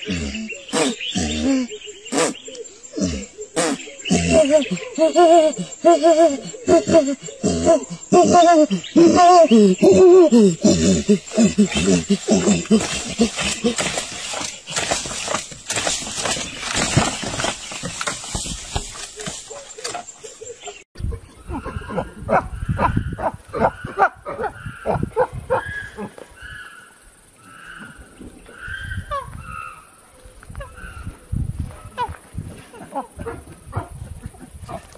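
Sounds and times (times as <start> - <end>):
chimpanzee hooting: 0.0 - 14.5.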